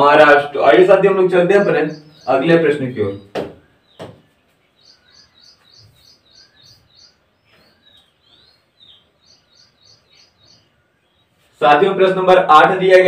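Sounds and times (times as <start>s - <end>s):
bird chirping: 0.0s - 13.0s.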